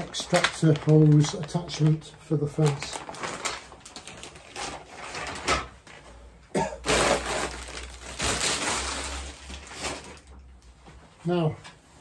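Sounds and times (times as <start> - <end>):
plastic packaging crinkling: 0.0 - 5.7, 6.8 - 10.6.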